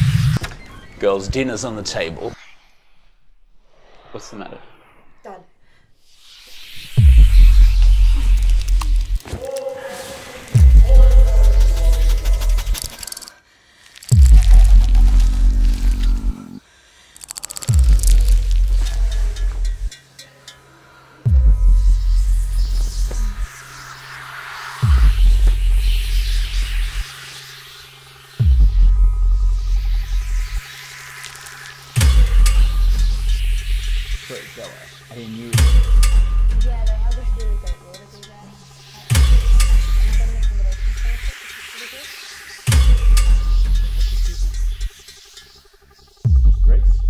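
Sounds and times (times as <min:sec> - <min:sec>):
deep low rumble: 0:10.6 - 0:13.0, 0:14.1 - 0:16.6, 0:17.6 - 0:19.9
hissing wash: 0:22.0 - 0:36.1, 0:38.1 - 0:46.2.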